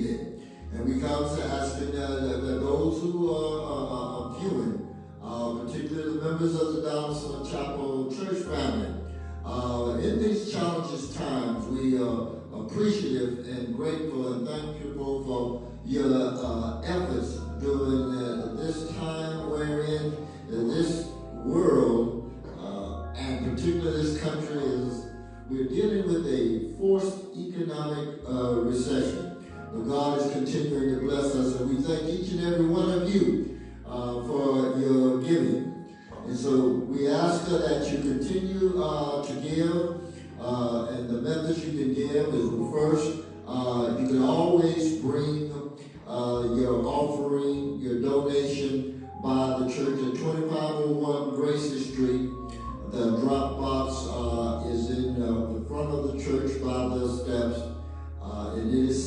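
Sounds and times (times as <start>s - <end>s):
low sustained bass notes: 0.0s - 59.0s
man speaking into a microphone: 0.0s - 59.0s.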